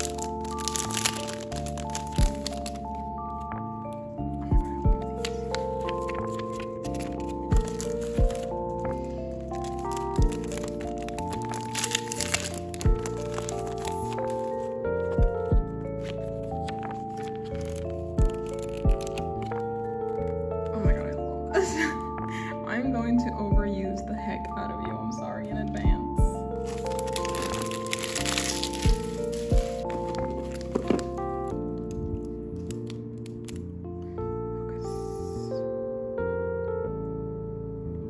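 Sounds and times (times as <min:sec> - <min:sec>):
cellophane packet crinkling: 0:00.0 - 0:04.0, 0:04.6 - 0:22.1, 0:26.6 - 0:33.7
background music with held tones: 0:00.0 - 0:38.0
synth music with bass hits: 0:14.1 - 0:17.0
deep kick drum: 0:15.2 - 0:15.8, 0:20.8 - 0:21.1, 0:23.5 - 0:23.9, 0:25.8 - 0:26.5.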